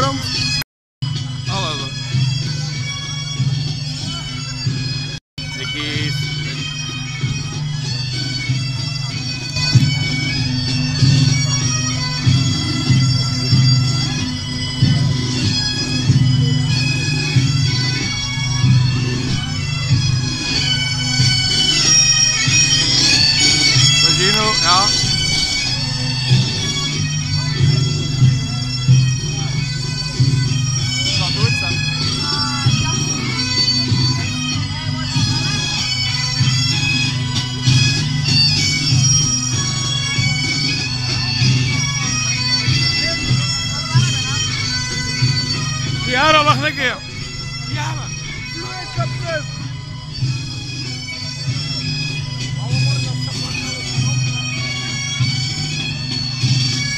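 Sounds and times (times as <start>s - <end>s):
bagpipes playing: 0.0s - 56.9s
voices: 5.5s - 56.9s.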